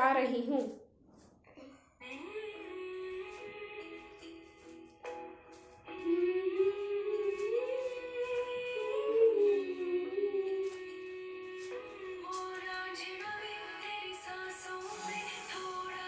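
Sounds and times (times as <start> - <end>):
woman singing over dance music: 6.0 - 16.0.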